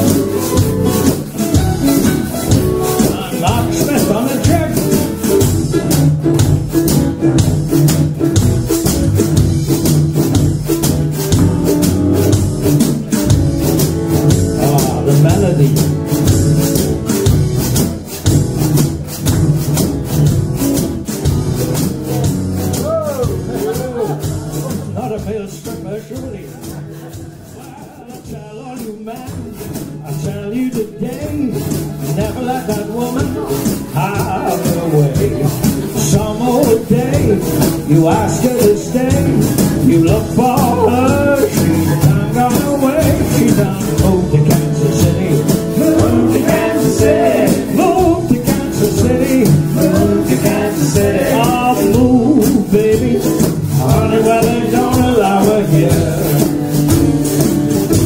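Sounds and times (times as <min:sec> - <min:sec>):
blown jug: 0:00.0 - 0:08.5
jug band music: 0:00.0 - 0:58.0
mandolin and guitars strumming: 0:00.0 - 0:58.0.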